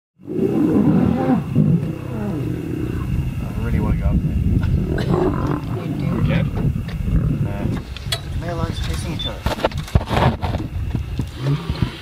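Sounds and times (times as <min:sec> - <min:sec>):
lions growling and roaring: 0:00.2 - 0:08.0, 0:11.2 - 0:12.0.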